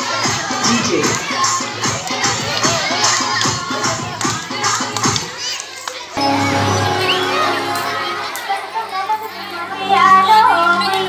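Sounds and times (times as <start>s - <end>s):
music with fast steady beat: 0.0s - 5.4s
children shouting and chattering: 0.0s - 11.0s.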